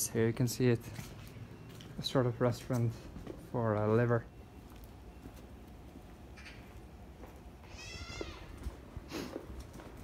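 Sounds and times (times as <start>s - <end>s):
faint street noise: 0.0s - 10.0s
high-pitched animal calls: 7.6s - 8.6s.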